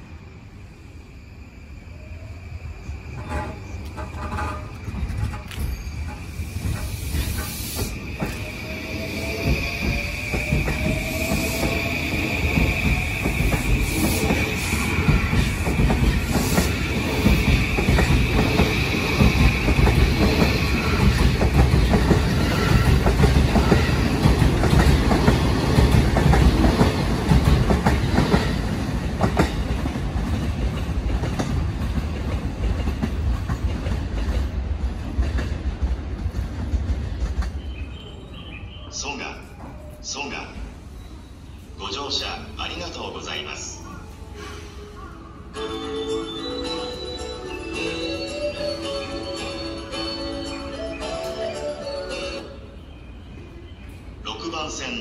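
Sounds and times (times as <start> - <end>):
train wheels clacking on rails: 3.2 - 37.9.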